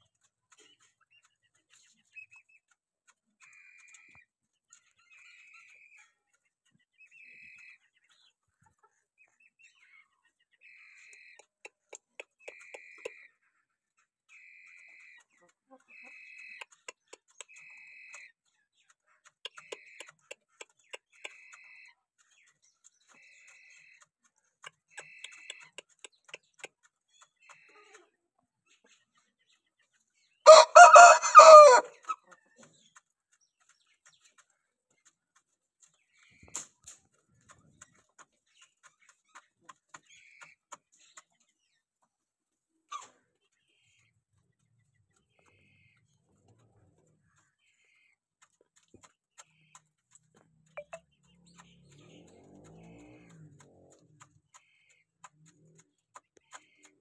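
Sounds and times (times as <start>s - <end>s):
soft clucks: 10.1s - 14.1s, 14.7s - 29.1s, 42.8s - 57.0s
rooster crowing: 30.5s - 32.0s.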